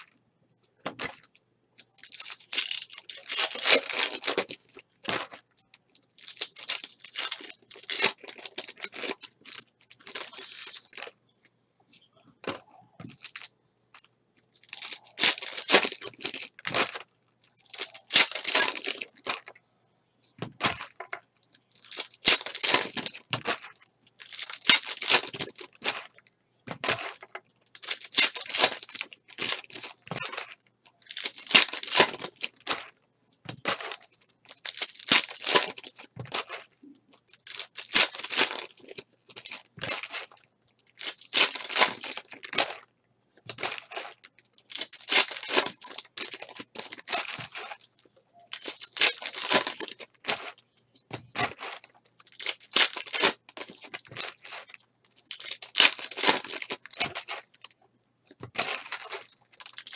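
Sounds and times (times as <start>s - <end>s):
foil wrappers tearing and crinkling: 2.0s - 5.4s, 6.1s - 11.1s, 14.6s - 19.5s, 21.6s - 32.9s, 33.5s - 42.8s, 43.4s - 50.6s, 51.2s - 57.7s, 58.3s - 59.9s.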